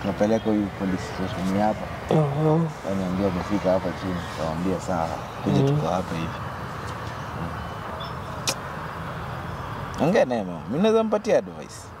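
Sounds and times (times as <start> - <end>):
outdoor background noise: 0.0 - 12.0
sharp click: 8.4 - 8.6.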